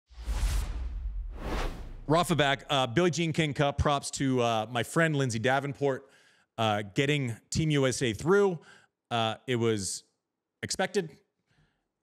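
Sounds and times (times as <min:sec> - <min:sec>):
whooshes: 0:00.1 - 0:02.4
deep low rumble: 0:00.1 - 0:02.7.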